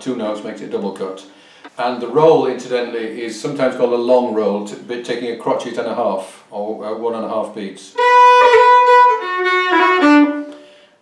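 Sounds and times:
fiddle playing a jig: 8.0 - 10.6.

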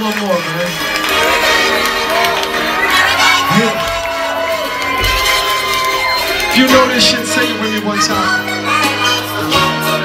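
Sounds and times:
concert music: 0.0 - 10.0
crowd cheering and shouting: 0.0 - 10.0.

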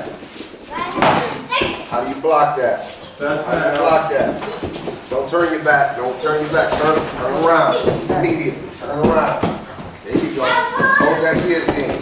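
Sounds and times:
voices in a room: 0.0 - 12.0.

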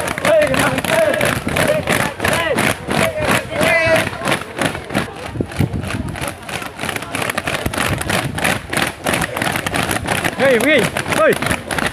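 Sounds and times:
boots marching on asphalt: 0.0 - 11.9.

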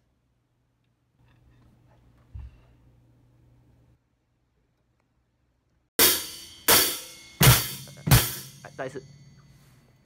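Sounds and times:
low drum hit: 6.0 - 8.7
cymbal crashes ringing: 6.0 - 9.7.

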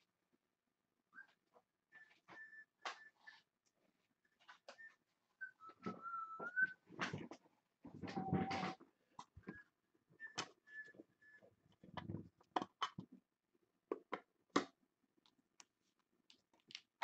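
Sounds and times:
high whistle-like tones: 2.0 - 3.3, 4.7 - 6.8, 8.1 - 8.8, 9.4 - 11.4.

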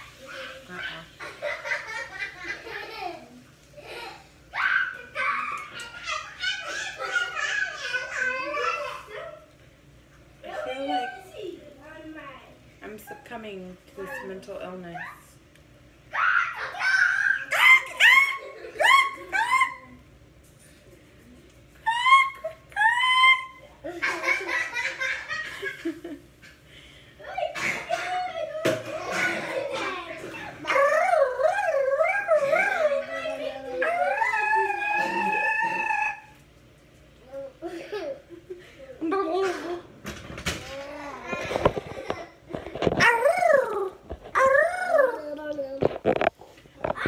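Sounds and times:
toddler howling like a dog: 21.8 - 23.6, 30.6 - 36.4
woman laughing: 35.0 - 36.0.

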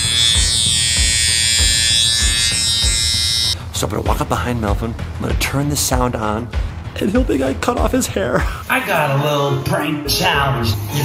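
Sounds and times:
electric shaver buzz: 0.0 - 3.6.

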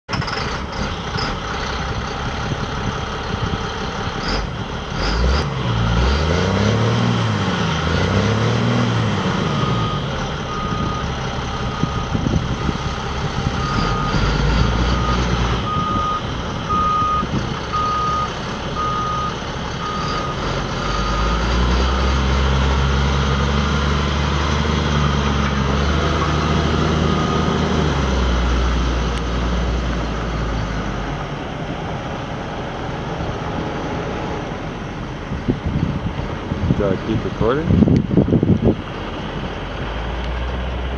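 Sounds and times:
truck engine revving: 0.1 - 40.9
reversing beeper: 9.4 - 12.8, 13.5 - 22.4, 26.0 - 27.8.

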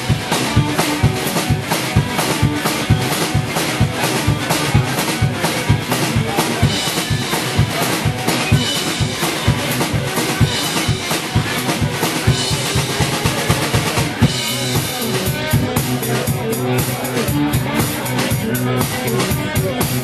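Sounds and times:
drum kit beat: 0.0 - 20.0
electric guitar: 0.0 - 20.0.

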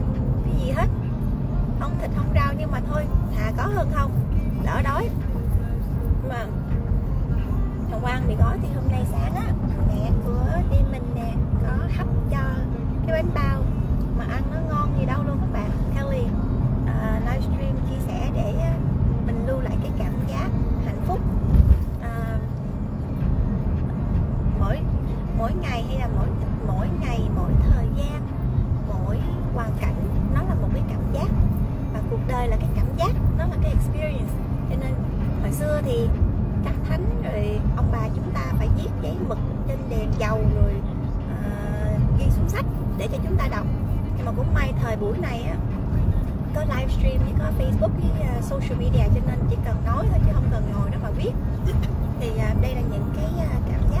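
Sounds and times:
woman talking: 0.0 - 1.0, 1.7 - 6.8, 7.4 - 22.6, 23.9 - 54.0
car cabin rumble while driving: 0.0 - 54.0.

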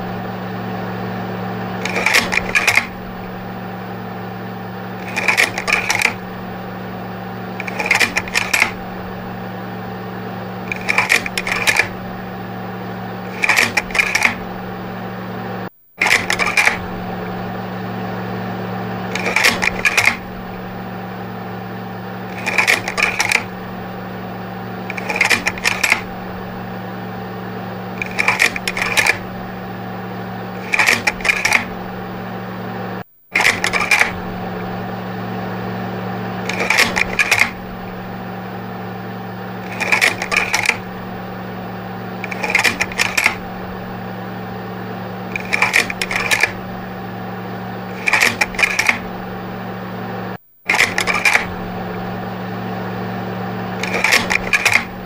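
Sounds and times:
projector motor hum: 0.0 - 55.0
projector clattering clicks: 1.7 - 3.6, 5.0 - 6.8, 7.5 - 10.0, 10.6 - 12.4, 13.0 - 14.8, 16.0 - 17.4, 19.0 - 20.9, 22.2 - 24.1, 24.7 - 27.2, 28.0 - 29.8, 30.5 - 32.2, 33.4 - 34.9, 36.3 - 38.4, 39.6 - 47.2, 47.9 - 49.6, 50.7 - 52.1, 53.7 - 55.0.

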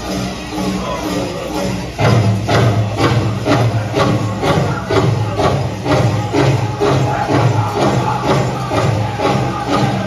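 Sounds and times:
group singing: 4.4 - 10.0.

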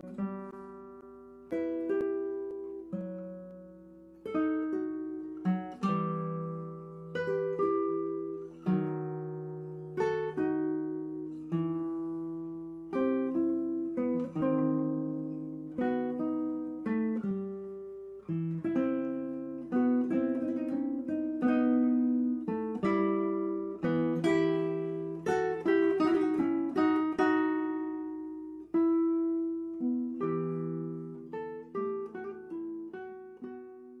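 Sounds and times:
acoustic guitar plucked notes: 0.0 - 34.0.

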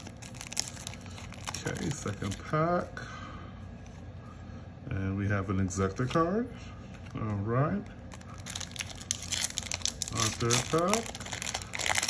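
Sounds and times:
foil wrapper crinkling and tearing: 0.0 - 2.6, 8.1 - 12.0.

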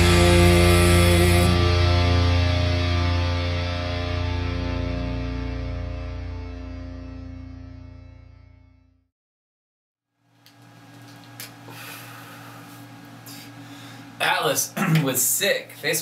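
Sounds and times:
distorted electric guitar chord: 0.0 - 9.0.

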